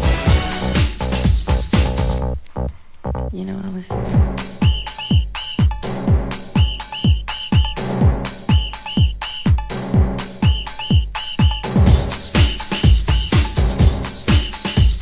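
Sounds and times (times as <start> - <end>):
kick drum thumping: 4.2 - 15.0
high whistle-like lead riff: 4.4 - 14.8.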